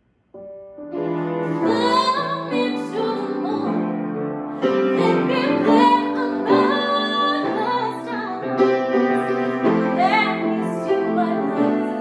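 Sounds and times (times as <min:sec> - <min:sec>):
piano: 0:00.0 - 0:12.0
woman singing classical style: 0:01.4 - 0:03.9, 0:04.6 - 0:08.6, 0:09.2 - 0:12.0.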